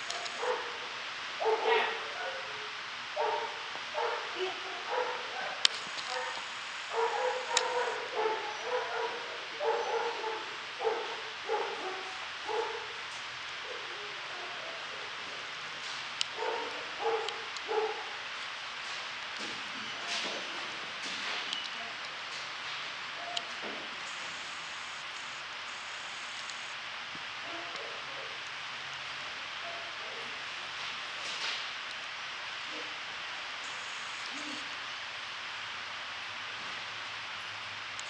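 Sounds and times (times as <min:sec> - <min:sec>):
dog yipping: 0:07.0 - 0:12.8.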